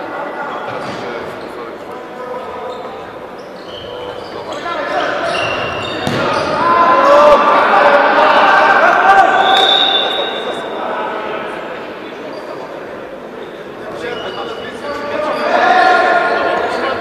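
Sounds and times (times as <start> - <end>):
shoes squeaking on floor: 2.5 - 6.6, 13.4 - 15.6
ball strike: 6.0 - 6.6.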